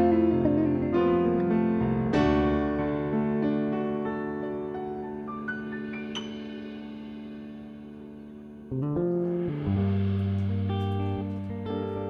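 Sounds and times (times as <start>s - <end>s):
electric guitar and bass phrase: 0.0s - 3.3s, 8.7s - 12.0s
keyboard chord: 0.0s - 6.5s.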